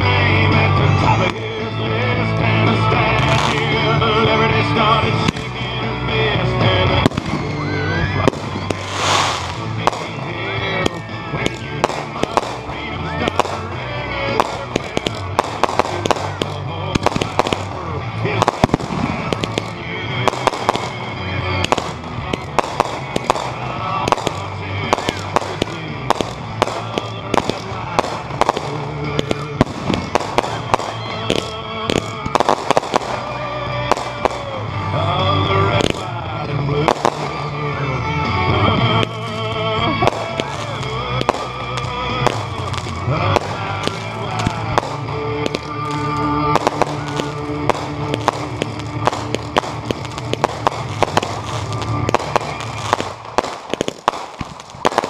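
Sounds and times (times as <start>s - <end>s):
fireworks bangs and crackles: 0.0s - 55.0s
song with singing: 0.0s - 55.0s.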